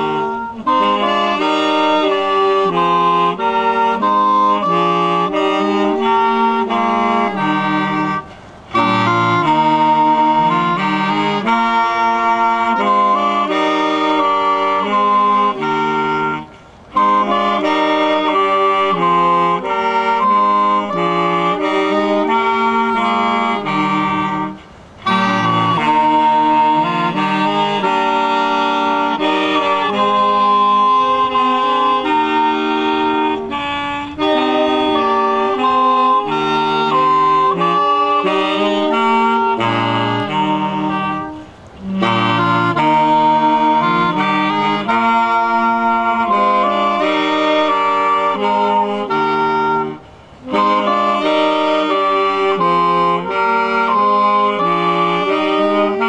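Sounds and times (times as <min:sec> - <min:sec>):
saxophone quartet playing: 0:00.0 - 0:56.0.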